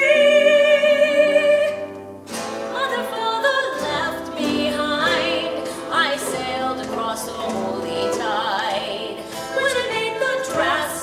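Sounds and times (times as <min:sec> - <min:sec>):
woman singing: 0:00.0 - 0:02.0, 0:02.7 - 0:11.0.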